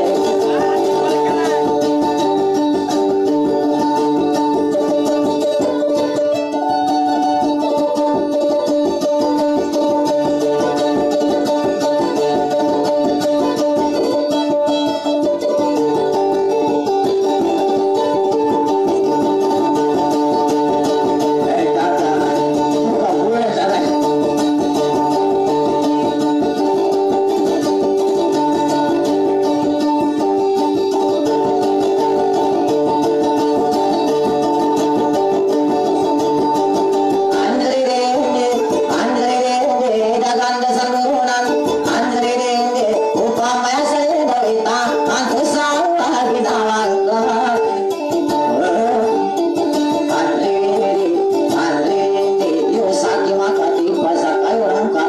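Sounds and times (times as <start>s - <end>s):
plucked string melody: 0.0s - 55.0s.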